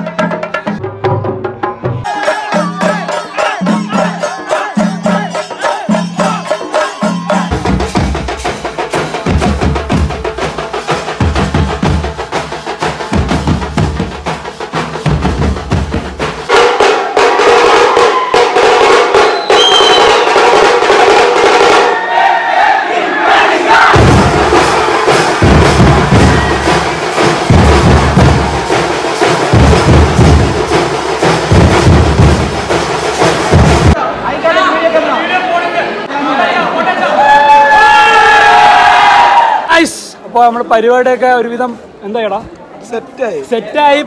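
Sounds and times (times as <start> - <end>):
drummers beating metal drums: 0.0 - 34.0
crowd singing and shouting: 1.7 - 9.2, 21.5 - 31.6
short high whistle: 19.2 - 20.6.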